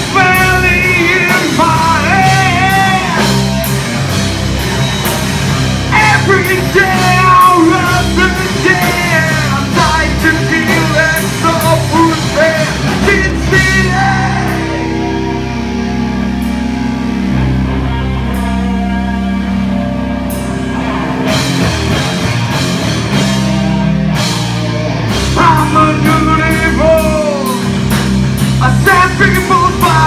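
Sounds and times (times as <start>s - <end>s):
man singing: 0.0s - 3.4s, 5.9s - 15.2s, 25.3s - 27.8s, 28.6s - 30.0s
drums: 0.0s - 30.0s
electric guitars sustained chords: 0.0s - 30.0s.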